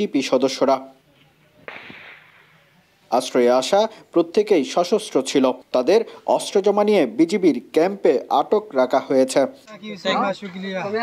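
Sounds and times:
distant gunshot with echo: 0:01.6 - 0:02.7.

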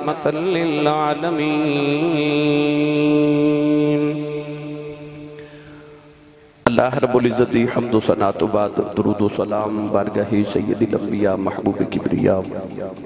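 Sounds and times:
man chanting: 0:00.0 - 0:05.4, 0:06.6 - 0:13.0
person speaking: 0:06.6 - 0:13.0.

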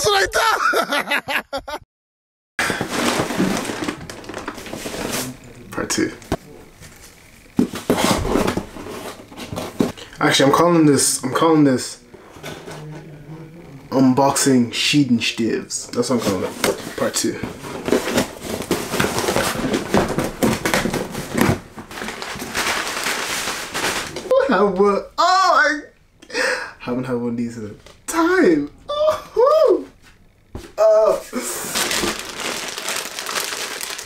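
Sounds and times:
person exclaiming: 0:00.0 - 0:00.8, 0:28.8 - 0:29.9, 0:30.8 - 0:31.6
items knocking together: 0:02.6 - 0:05.2, 0:16.5 - 0:24.3
packaging rustling and crinkling: 0:02.6 - 0:06.1, 0:16.1 - 0:24.3, 0:31.4 - 0:34.0.

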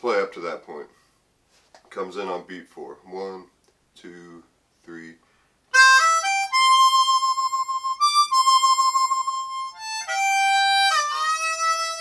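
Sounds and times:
harmonica playing: 0:05.7 - 0:12.0.

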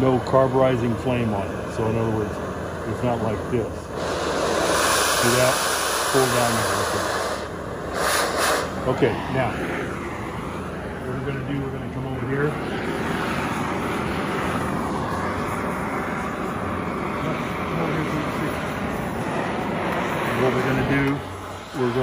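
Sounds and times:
cutting torch flame hissing: 0:00.0 - 0:22.0.

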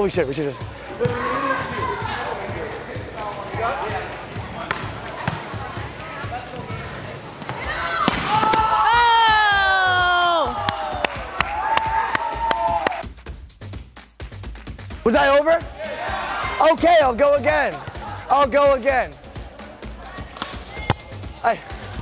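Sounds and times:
volleyballs bouncing and struck: 0:04.5 - 0:06.7, 0:07.4 - 0:08.9, 0:20.2 - 0:21.2.

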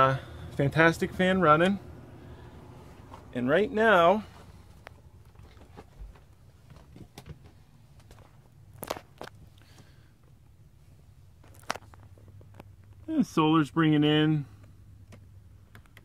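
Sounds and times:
roof vent fan humming: 0:00.0 - 0:08.2
faint footsteps: 0:02.8 - 0:03.4.

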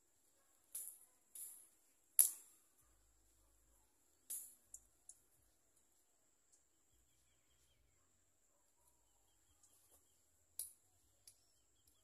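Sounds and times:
faint bird chirps: 0:02.6 - 0:12.0.

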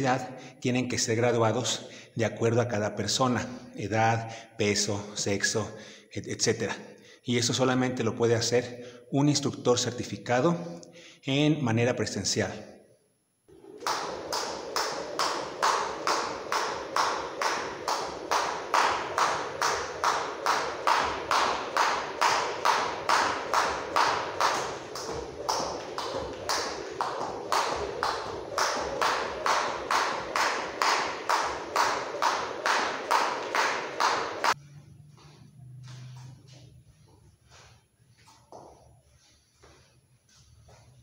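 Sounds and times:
skipping rope tapping floor mat: 0:13.5 - 0:34.6, 0:38.2 - 0:38.9.

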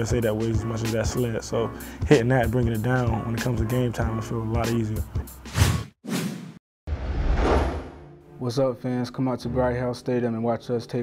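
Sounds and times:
background music: 0:00.0 - 0:05.8, 0:07.6 - 0:11.0
whoosh sound effects: 0:05.5 - 0:08.0.

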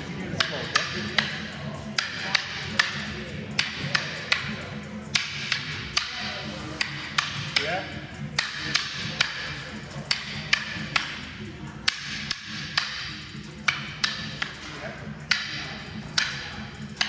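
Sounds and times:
rattan sticks clacking: 0:00.3 - 0:17.0.

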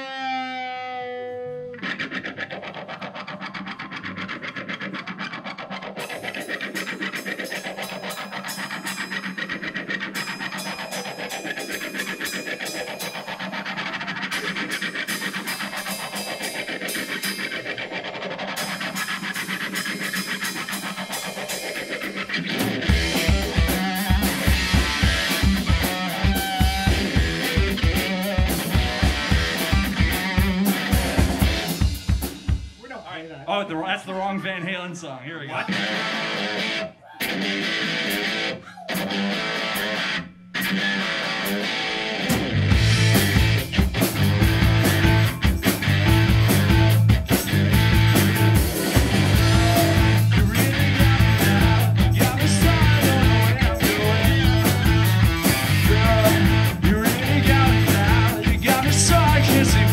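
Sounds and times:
electric guitar scraping with sweep effect: 0:00.0 - 0:32.1, 0:35.6 - 0:59.9
bass and drums beat: 0:18.6 - 0:33.2, 0:42.2 - 0:59.9.

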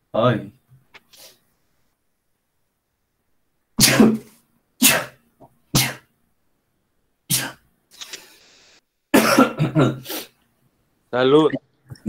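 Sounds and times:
man sneezing: 0:03.8 - 0:05.2, 0:05.8 - 0:06.1, 0:07.3 - 0:07.6.

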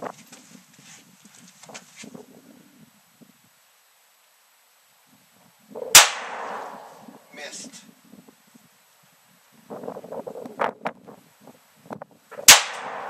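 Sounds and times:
pistol shot: 0:05.9 - 0:07.0, 0:12.4 - 0:13.0.

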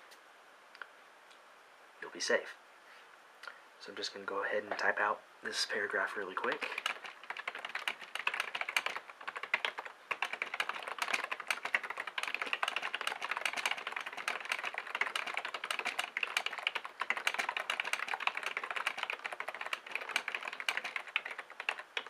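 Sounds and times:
fast typing on keyboard: 0:06.4 - 0:22.0.

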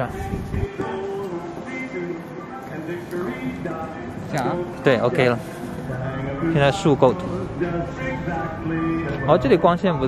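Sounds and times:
quiet background music: 0:00.0 - 0:10.0
people speaking: 0:06.4 - 0:07.4, 0:09.1 - 0:10.0.

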